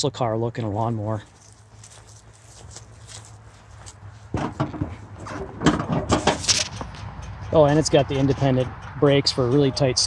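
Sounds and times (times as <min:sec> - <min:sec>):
clunks and knocks on tractor: 0:04.3 - 0:10.0.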